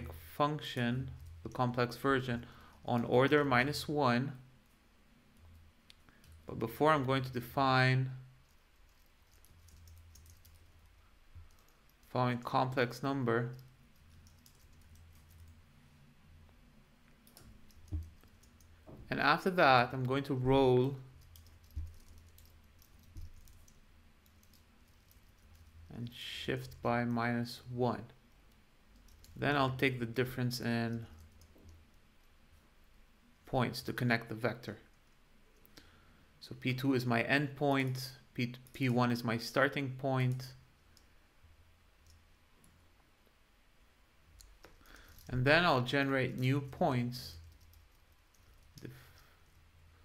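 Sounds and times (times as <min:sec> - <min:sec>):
low steady hum: 0:00.0 - 0:50.0.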